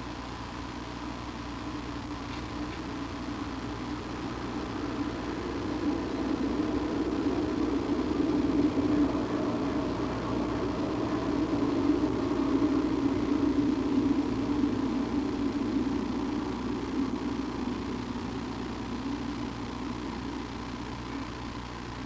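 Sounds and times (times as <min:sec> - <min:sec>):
low mechanical drone: 0:00.0 - 0:22.0.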